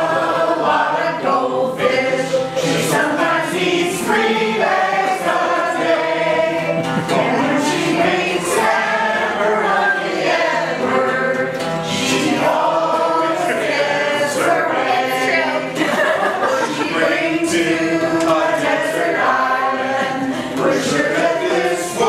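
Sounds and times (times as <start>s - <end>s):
acoustic guitar: 0.0s - 22.0s
group singing together: 0.0s - 22.0s.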